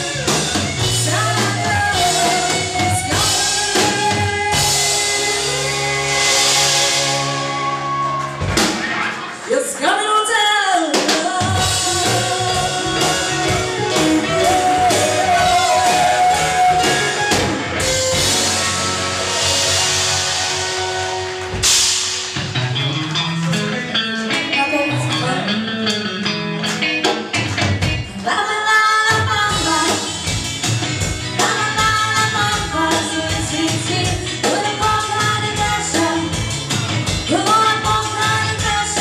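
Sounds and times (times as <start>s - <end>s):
rock band playing: 0.0s - 39.0s.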